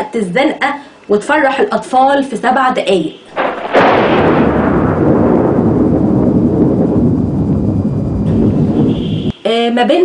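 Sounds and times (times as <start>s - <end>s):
deep boom and rumble: 3.4s - 9.2s.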